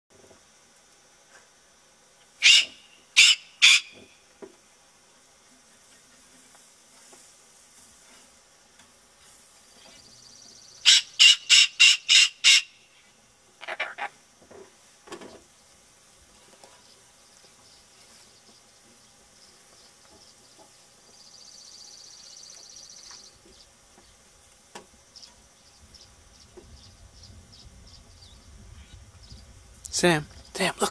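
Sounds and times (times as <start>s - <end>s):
cockatoo squawking: 2.4s - 4.0s, 10.8s - 12.8s, 13.6s - 14.2s
quiet low bird sounds: 15.2s - 24.4s, 25.0s - 30.8s.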